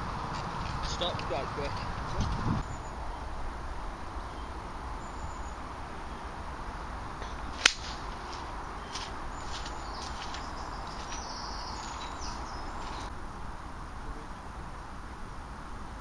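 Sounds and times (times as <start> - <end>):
outdoor background hiss: 0.0 - 16.0
golf club striking ball: 7.2 - 8.5.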